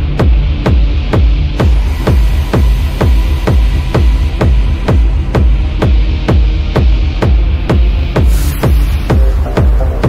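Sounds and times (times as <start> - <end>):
deep bass: 0.0 - 10.0
techno kick drum: 0.0 - 10.0
high hiss sweep: 8.2 - 10.0.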